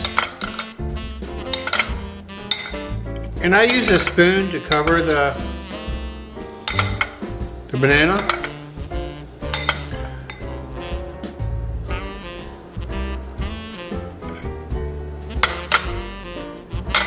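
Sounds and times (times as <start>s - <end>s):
background music: 0.0s - 17.0s
spoon and fork clinking on bowl: 1.5s - 5.2s, 6.6s - 7.2s, 8.2s - 8.6s, 9.5s - 10.5s.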